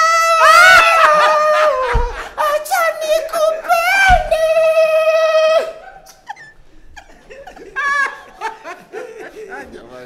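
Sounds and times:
laughter: 0:00.7 - 0:02.3, 0:05.8 - 0:10.0.

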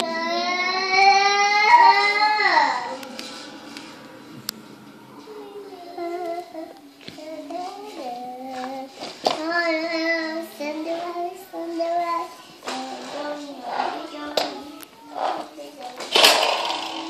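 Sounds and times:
child singing: 0:00.0 - 0:03.0, 0:05.2 - 0:16.1.

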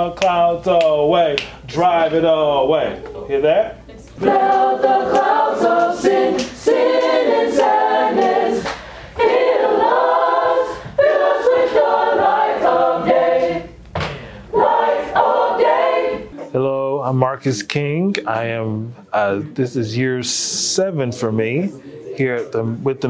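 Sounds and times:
choir singing: 0:04.2 - 0:13.8, 0:14.5 - 0:16.5
singers breathing: 0:08.6 - 0:09.2, 0:10.6 - 0:11.1, 0:14.0 - 0:14.6.

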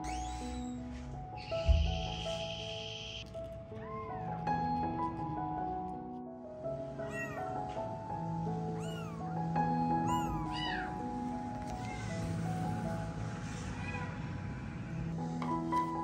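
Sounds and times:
kittens mewing: 0:07.0 - 0:07.5, 0:08.8 - 0:09.2, 0:10.0 - 0:11.0.

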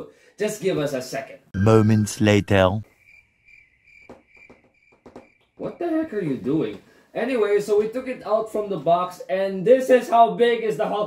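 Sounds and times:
cricket chirping: 0:03.0 - 0:05.4.

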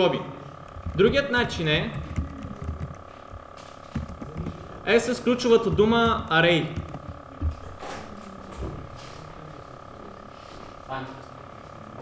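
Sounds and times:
steady electrical hum: 0:00.0 - 0:12.0
computer keyboard typing: 0:00.7 - 0:07.6.

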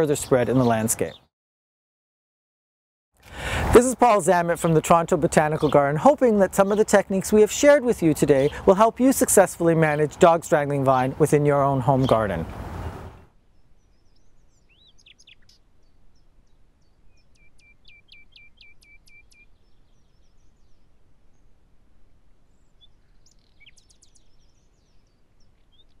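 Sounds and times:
outdoor background noise: 0:00.0 - 0:01.3, 0:03.2 - 0:26.0
quick bird chirps: 0:12.0 - 0:21.6
higher bird calls: 0:12.8 - 0:21.6.

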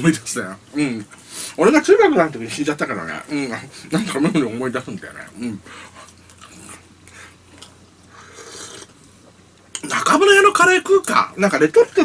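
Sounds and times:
man chewing: 0:05.3 - 0:09.8.

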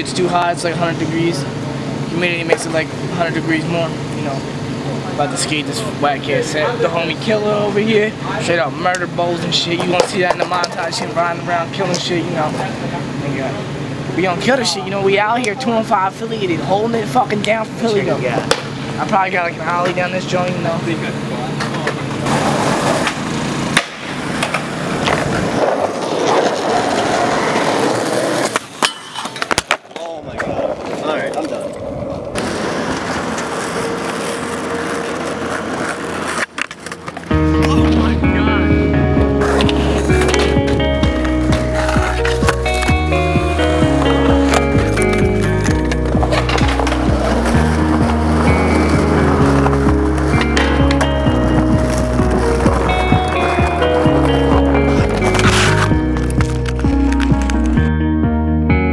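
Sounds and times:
skateboard wheels rolling on concrete: 0:00.0 - 0:58.0
skateboard clacks and landings: 0:21.6 - 0:31.6, 0:39.4 - 0:57.8
music with heavy bass line: 0:37.3 - 0:58.9.

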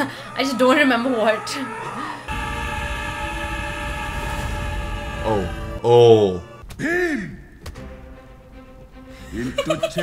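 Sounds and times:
low rumble: 0:02.2 - 0:06.7.

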